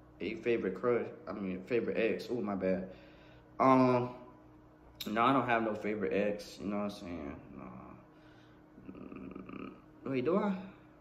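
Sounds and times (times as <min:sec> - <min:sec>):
person humming nasally: 0:08.8 - 0:09.9.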